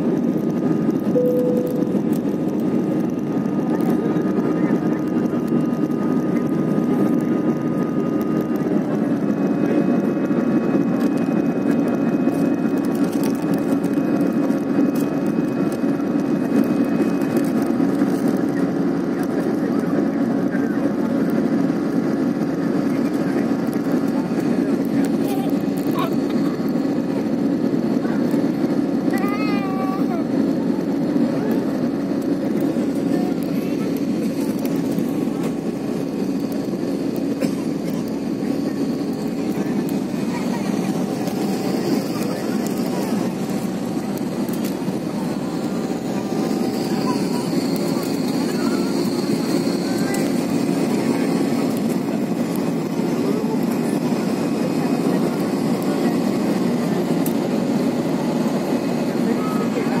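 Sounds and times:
airliner cabin engine rush: 0.0 - 60.0
faint high tone: 1.2 - 2.1.

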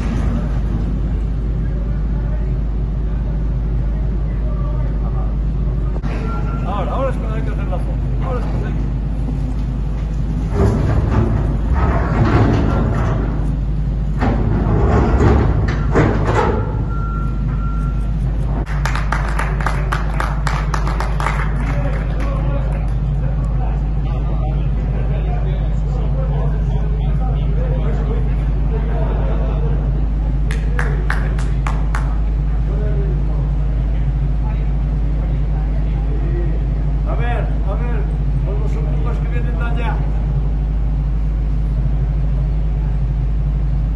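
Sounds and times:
construction machinery drone: 0.0 - 43.9
excavator rumble: 0.0 - 43.9.

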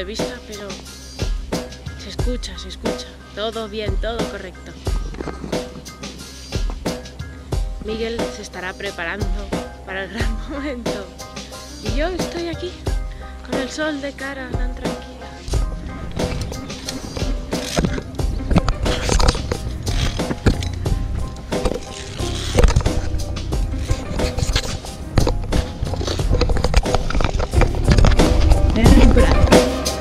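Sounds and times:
background music: 0.0 - 30.0
carabiners clicking on steel cable: 16.2 - 23.1.

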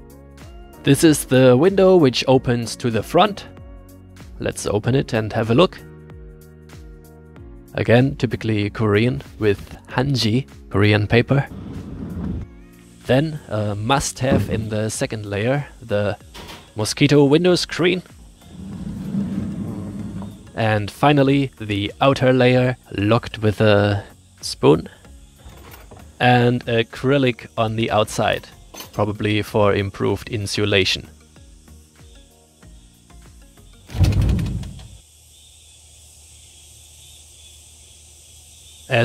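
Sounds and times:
faint background music: 0.0 - 6.5, 7.4 - 34.5
soft outdoor hiss: 7.6 - 39.0
sliding screen scraping on track: 11.4 - 12.5, 18.4 - 20.6.

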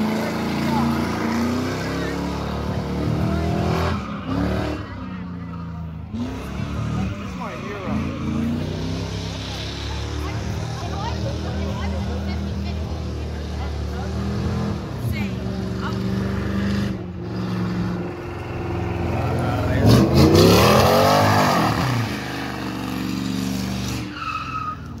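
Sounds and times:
car engine revving: 0.0 - 25.0
tyres squealing: 17.4 - 25.0.

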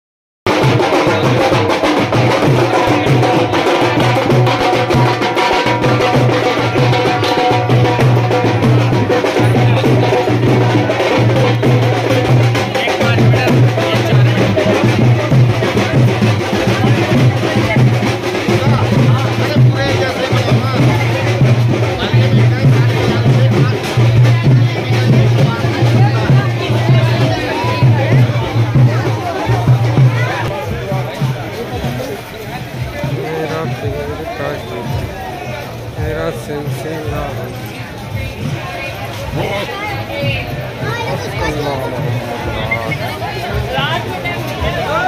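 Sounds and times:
crowd voices: 0.5 - 45.0
drums beaten with sticks: 0.5 - 45.0.

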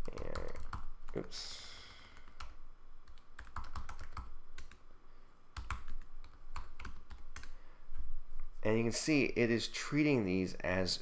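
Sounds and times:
keyboard typing: 0.0 - 1.3, 2.1 - 4.8, 5.6 - 7.6.

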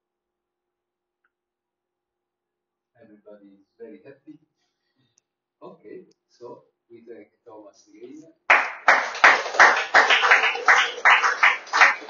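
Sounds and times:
small audience applauding: 8.5 - 12.0.

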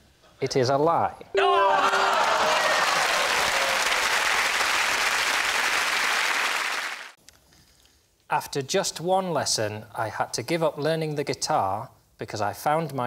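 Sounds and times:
studio audience applauding: 1.4 - 7.2.

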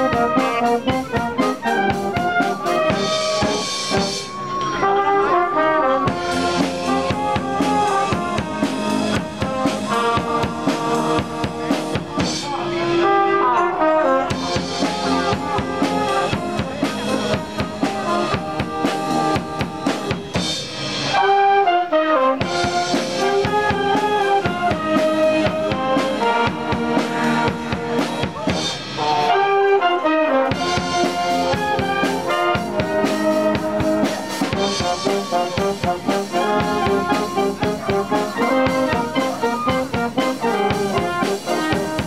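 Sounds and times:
drum kit beat: 0.0 - 21.4, 22.3 - 42.0
wind band melody: 0.0 - 42.0.

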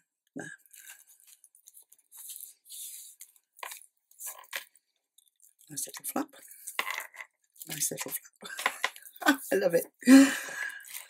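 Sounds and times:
paper rustling: 0.7 - 5.7.

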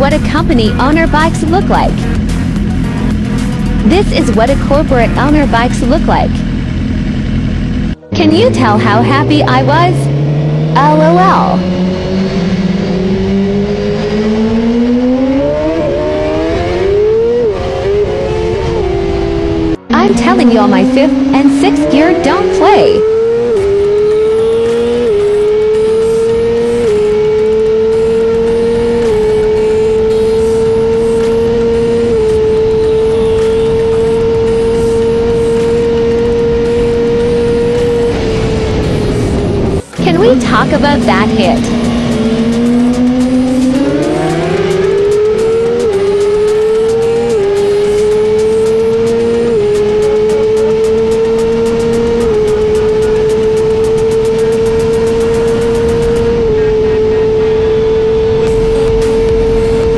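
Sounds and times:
motorcycle engine accelerating: 0.0 - 59.9.

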